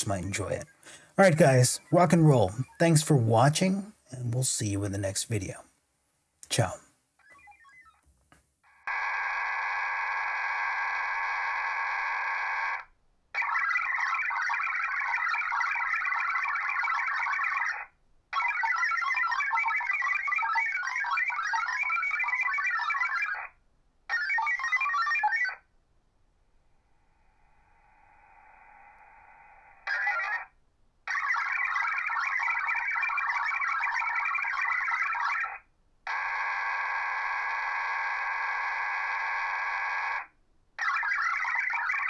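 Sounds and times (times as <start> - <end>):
warbling modem tone bursts: 7.2 - 8.0, 27.2 - 30.5, 31.1 - 40.2, 40.8 - 42.0.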